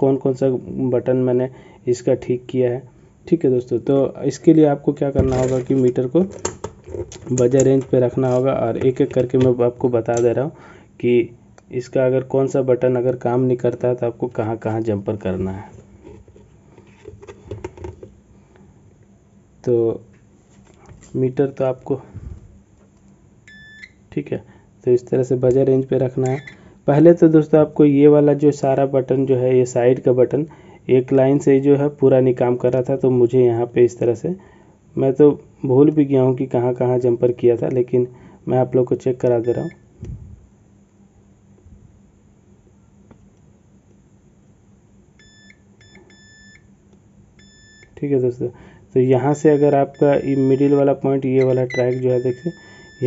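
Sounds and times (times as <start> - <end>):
multimeter high beep: 23.5 - 24.0, 26.3 - 26.6, 39.4 - 39.8, 45.2 - 46.7, 47.4 - 48.0, 49.3 - 53.0.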